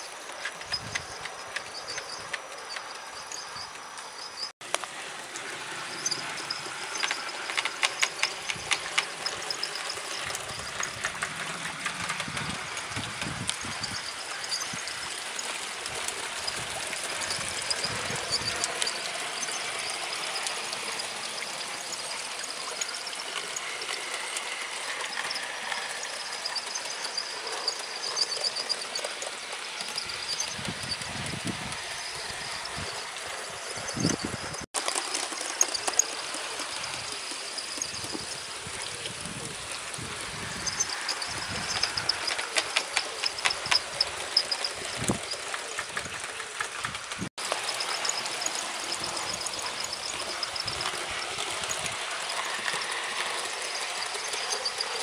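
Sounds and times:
model train wheels rumbling on rail: 0:00.0 - 0:55.0
wheels clicking over rail joints: 0:00.0 - 0:55.0.

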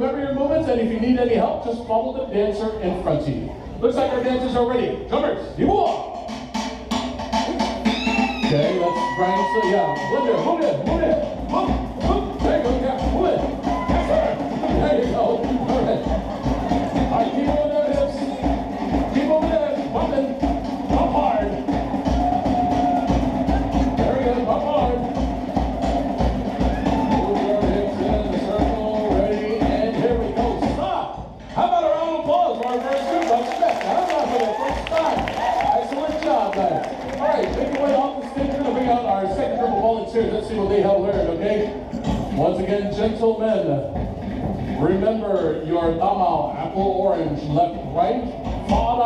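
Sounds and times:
crowd voices and cheering: 0:00.0 - 0:49.0
fast drumming: 0:05.6 - 0:49.0.

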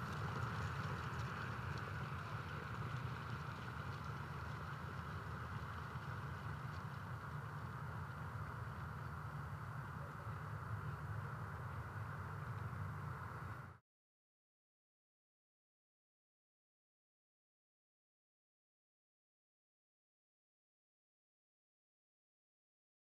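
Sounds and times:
steady low hum: 0:00.0 - 0:13.8.

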